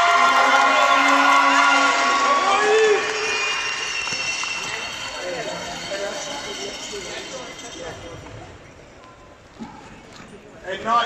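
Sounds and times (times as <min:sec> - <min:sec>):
indistinct echoing voices: 0:00.0 - 0:10.0.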